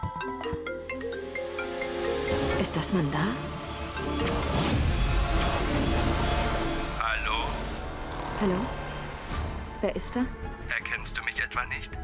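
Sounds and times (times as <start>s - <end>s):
dramatic background music: 0.3s - 12.0s.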